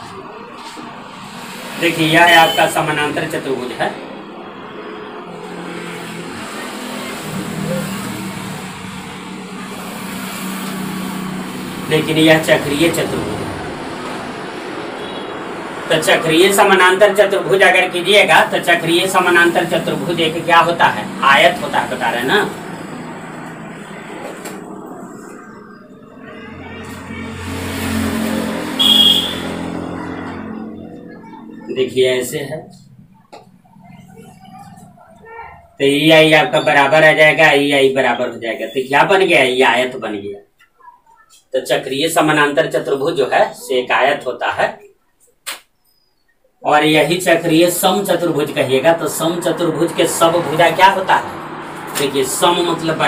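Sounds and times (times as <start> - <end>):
vehicle engine passing by: 0.0 - 36.4, 47.0 - 53.0
brief high tone: 22.4 - 33.0.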